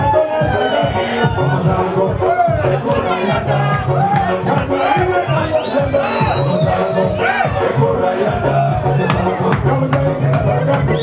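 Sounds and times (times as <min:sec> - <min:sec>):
crowd shouting along: 0:00.0 - 0:09.6
live music with bass beat: 0:00.0 - 0:11.0
man singing into microphone: 0:00.0 - 0:11.0.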